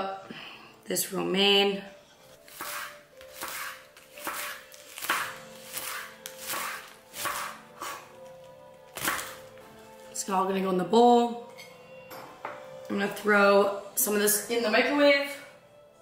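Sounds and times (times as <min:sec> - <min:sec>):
background music: 0:00.0 - 0:16.0
knife chopping lettuce on board: 0:02.5 - 0:08.3, 0:08.9 - 0:09.5.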